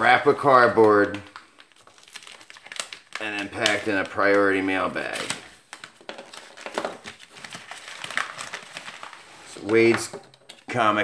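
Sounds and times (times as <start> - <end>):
plastic mailer bag crinkling: 0.0 - 9.9.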